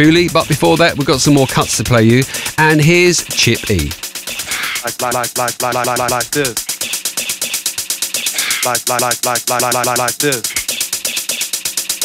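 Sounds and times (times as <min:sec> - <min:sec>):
chopped vocal sample stuttering: 0:00.0 - 0:07.4, 0:08.2 - 0:10.9
drum machine ticking rapidly: 0:00.0 - 0:12.0.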